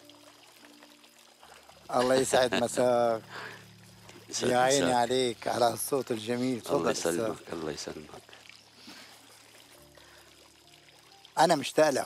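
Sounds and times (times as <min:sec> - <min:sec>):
faint background music: 0:00.0 - 0:12.0
fountain splashing and trickling: 0:00.0 - 0:12.0.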